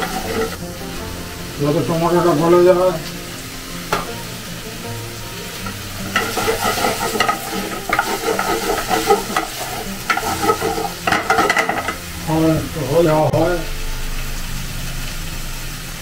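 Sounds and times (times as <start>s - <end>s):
wooden spatula scraping pan: 0.0s - 0.6s, 5.6s - 12.0s
vegetables sizzling in frying pan: 0.0s - 16.0s.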